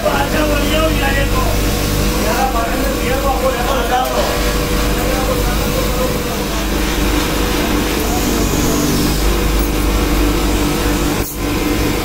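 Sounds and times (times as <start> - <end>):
people talking: 0.0 - 9.8
electric motor humming: 0.0 - 12.0
metal hissing against polishing wheel: 1.6 - 11.6.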